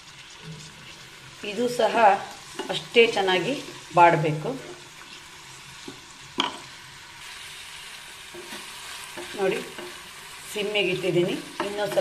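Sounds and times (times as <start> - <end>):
onions and tomatoes sizzling: 0.0 - 12.0
wooden spatula scraping pan: 8.3 - 10.1.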